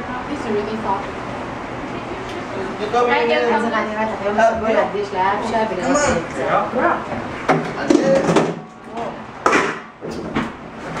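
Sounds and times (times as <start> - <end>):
people talking: 0.0 - 1.1, 7.8 - 9.3
sharp knocks: 9.4 - 10.5.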